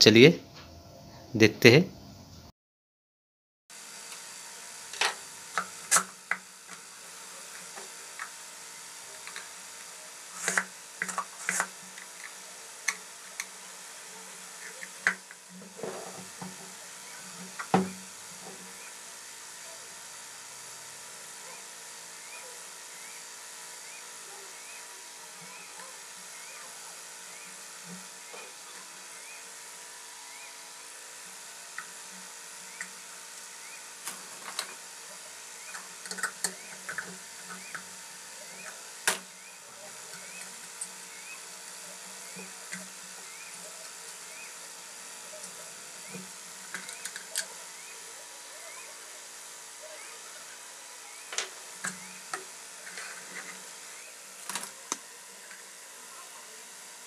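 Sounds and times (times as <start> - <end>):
steady background hum: 3.8 - 57.0.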